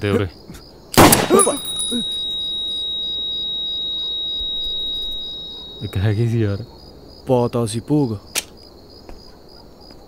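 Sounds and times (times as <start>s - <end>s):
high-pitched ear ringing tone: 1.2s - 7.0s.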